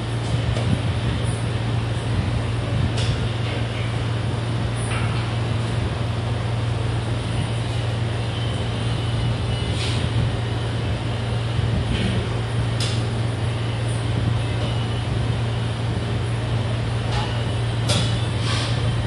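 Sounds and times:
low mechanical hum: 0:00.0 - 0:19.0.

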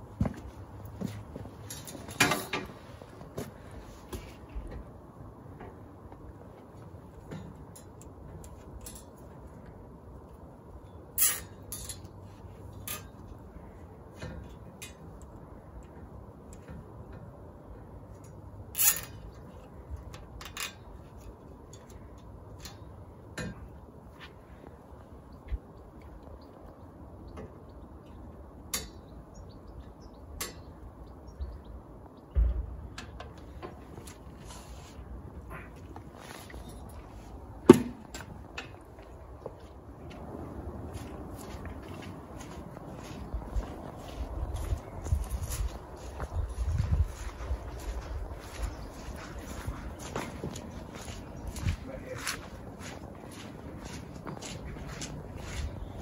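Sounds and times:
pipe and pole clicks and knocks: 0:18.2 - 0:23.8.

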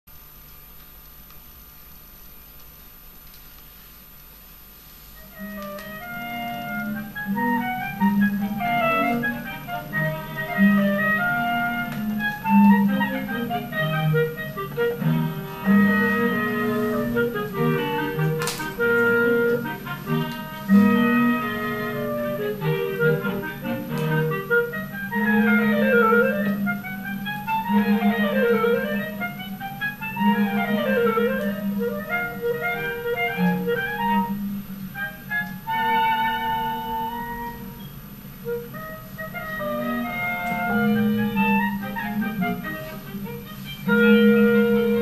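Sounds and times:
clarinet melody: 0:05.0 - 0:45.0
bowed cello: 0:06.0 - 0:26.6, 0:39.6 - 0:45.0.

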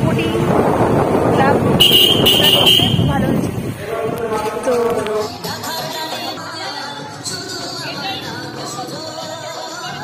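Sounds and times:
busy street noise: 0:00.0 - 0:10.0
voices: 0:00.0 - 0:10.0.

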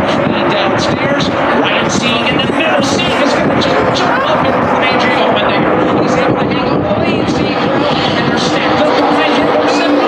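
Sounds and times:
race car engines droning: 0:00.0 - 0:10.0
voices: 0:00.0 - 0:10.0.

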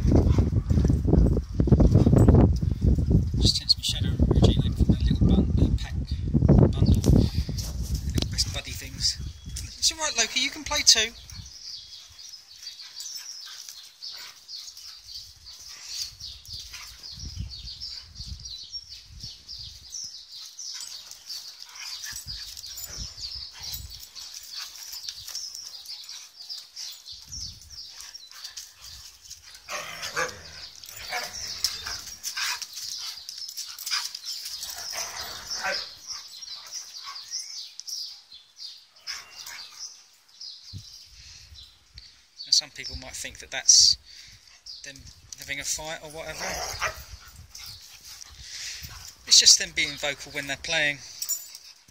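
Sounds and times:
dogs growling while play-fighting: 0:28.9 - 0:32.6.

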